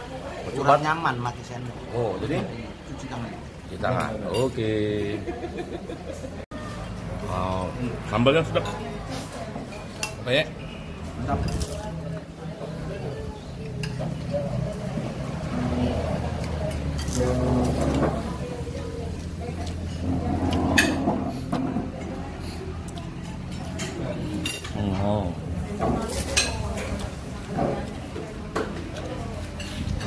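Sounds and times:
indistinct voices: 10.6 - 30.0
dishes and cutlery clinking: 19.6 - 22.2, 25.7 - 30.0.

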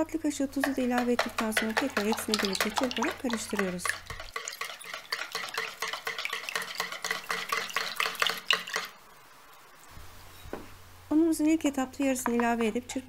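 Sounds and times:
whisk in plastic bowl: 0.6 - 8.9.

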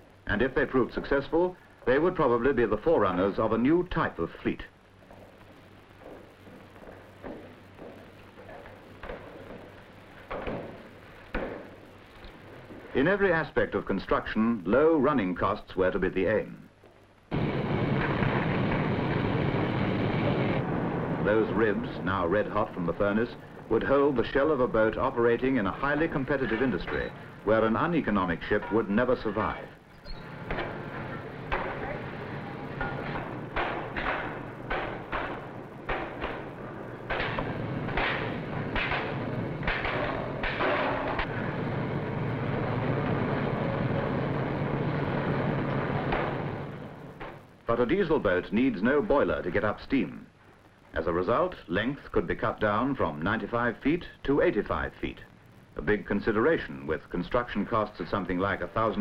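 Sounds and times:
furnace roaring: 0.0 - 51.2
steady machine hum: 0.0 - 51.2
shipyard din: 16.1 - 50.4
hammer blows on hot steel: 28.3 - 41.6.

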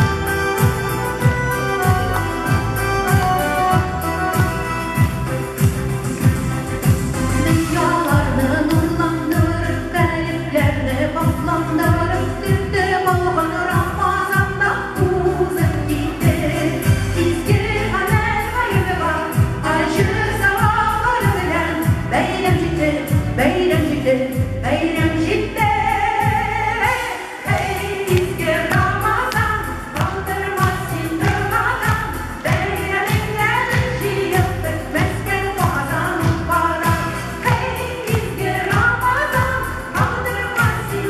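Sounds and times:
steady bass beat: 0.0 - 41.0
women's group singing: 11.7 - 41.0.

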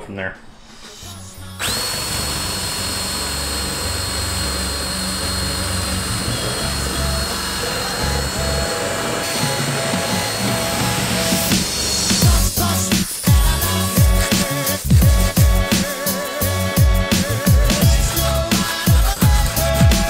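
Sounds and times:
background music: 0.0 - 20.0
drill grinding metal: 0.7 - 20.0.

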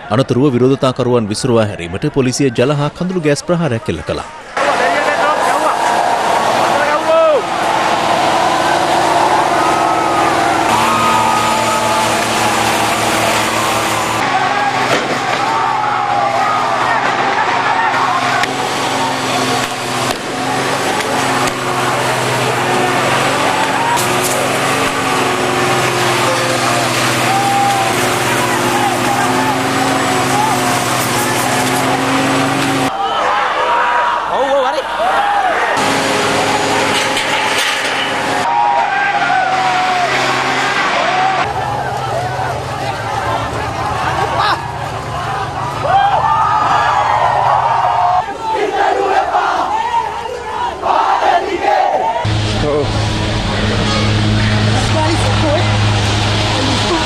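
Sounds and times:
crowd of protesters shouting: 4.2 - 52.3
truck engine running: 4.4 - 32.9, 35.4 - 57.0
water jets hissing: 4.6 - 14.8
water jet hissing: 10.4 - 14.2.

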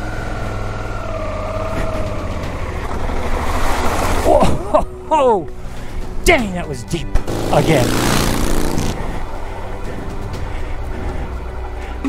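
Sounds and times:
motorcycle engine rumbling: 7.2 - 12.0.

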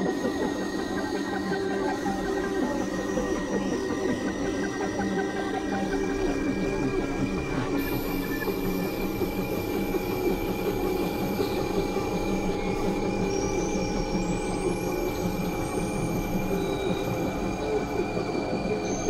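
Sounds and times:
synthesizer drone: 0.0 - 19.0.

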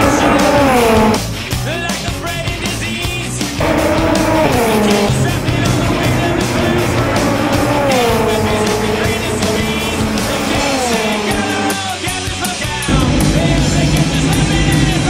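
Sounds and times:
race car engine at high revs: 0.0 - 1.6, 3.5 - 12.0, 12.9 - 15.0
rock music with drum beat: 0.0 - 15.0.

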